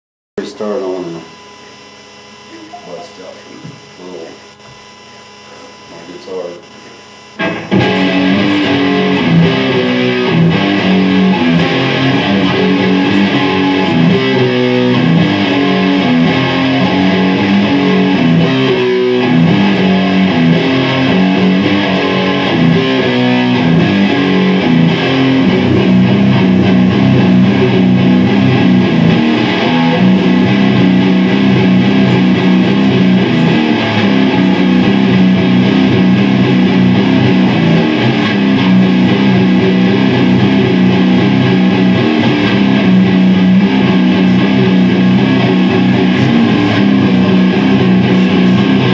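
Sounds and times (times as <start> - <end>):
electric guitar riff: 7.4 - 48.9.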